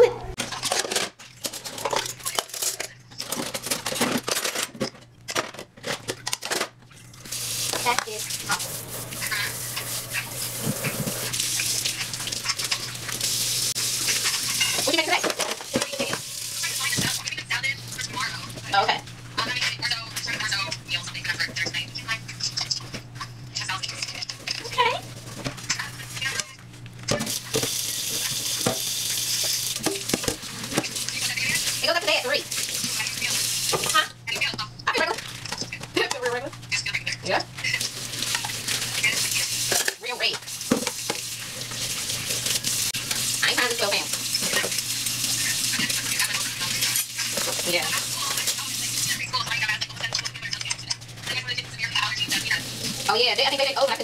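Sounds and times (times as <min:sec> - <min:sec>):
dishes scrubbed: 0:07.0 - 0:17.2, 0:37.7 - 0:49.2
tap water running into sink: 0:07.3 - 0:17.3, 0:27.2 - 0:34.0, 0:37.8 - 0:49.1
dishes clinking: 0:14.2 - 0:16.2.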